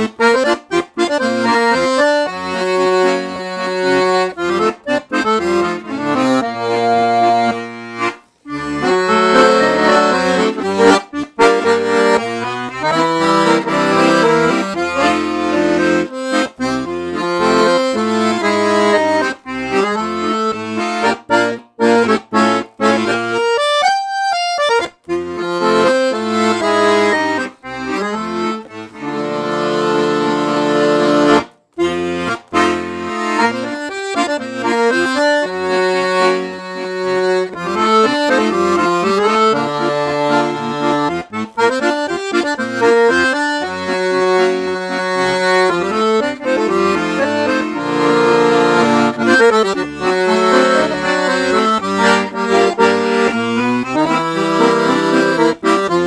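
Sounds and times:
accordion melody with bass chords: 0:00.0 - 0:56.0.

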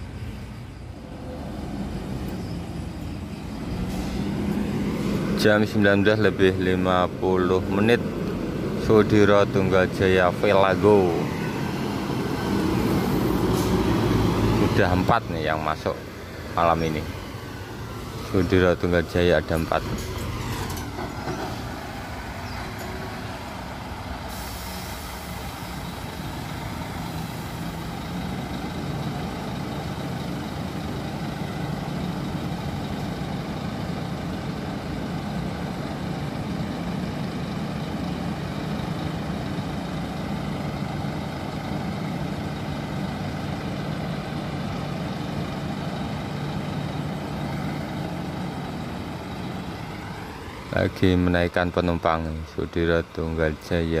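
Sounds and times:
diesel bus engine running: 0:00.0 - 0:54.0
air brakes hissing: 0:03.5 - 0:05.4, 0:12.9 - 0:14.0, 0:24.2 - 0:27.9.

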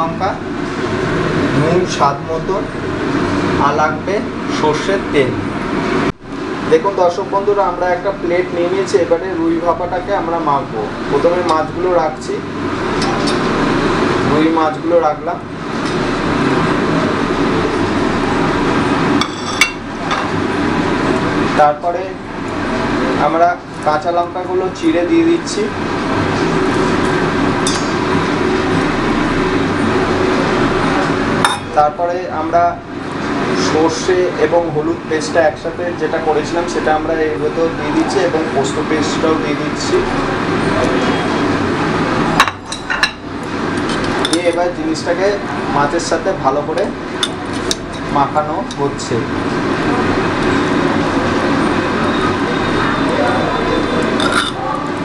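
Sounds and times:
steady background noise: 0:00.0 - 0:55.0.

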